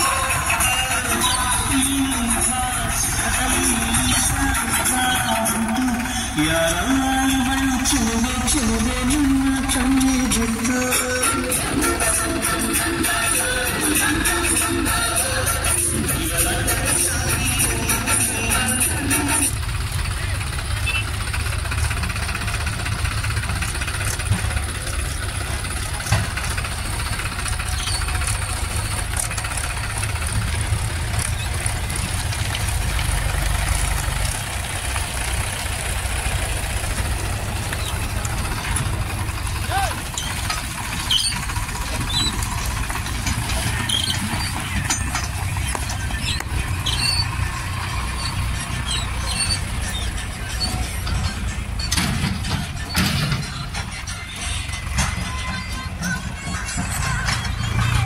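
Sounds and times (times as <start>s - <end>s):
tractor diesel engine rumbling: 0.0s - 58.0s.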